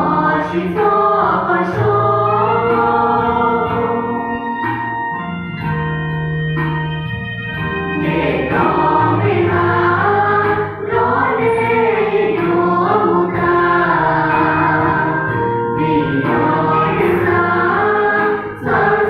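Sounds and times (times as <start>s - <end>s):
choir singing a hymn: 0.0s - 4.8s, 8.0s - 19.0s.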